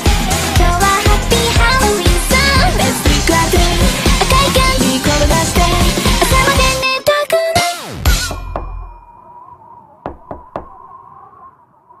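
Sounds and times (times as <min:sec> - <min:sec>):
quick knocks: 0:10.0 - 0:10.8.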